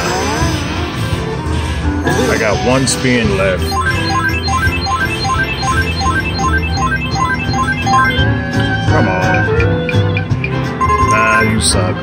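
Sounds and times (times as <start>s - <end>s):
slot machine chime tune: 3.6s - 8.4s, 10.8s - 11.8s.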